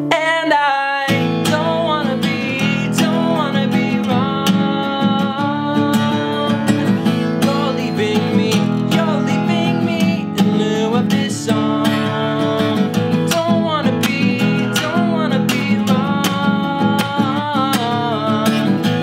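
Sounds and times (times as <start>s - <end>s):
acoustic guitar strumming: 0.0s - 19.0s
man singing: 0.0s - 19.0s.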